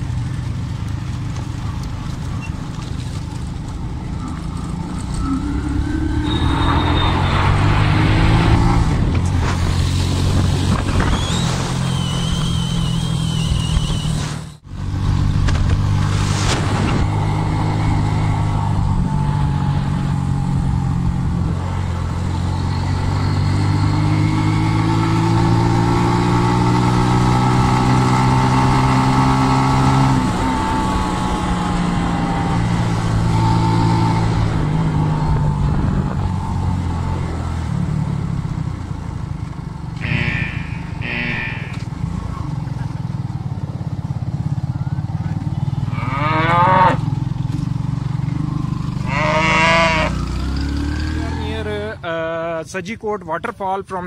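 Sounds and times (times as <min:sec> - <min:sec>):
short high-pitched bursts: 0:40.0 - 0:41.8
cattle lowing: 0:40.0 - 0:41.9.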